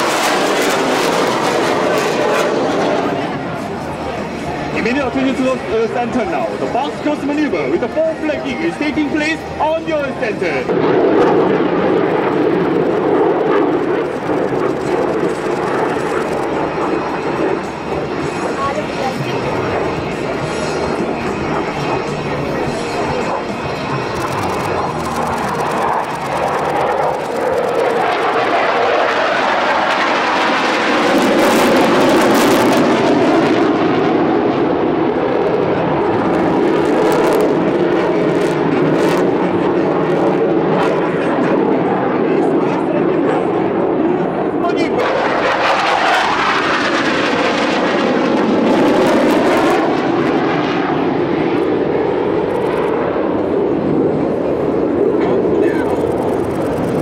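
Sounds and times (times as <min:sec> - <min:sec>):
jet engines roaring: 0:00.0 - 0:57.0.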